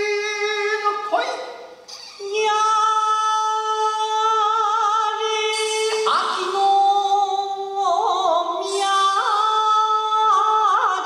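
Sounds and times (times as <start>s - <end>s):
man singing a long high note: 2.2s - 11.0s.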